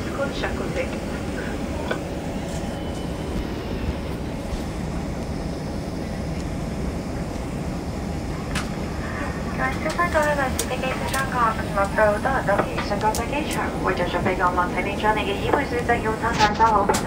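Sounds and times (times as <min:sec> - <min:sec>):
airliner cabin rumble: 0:00.0 - 0:17.0.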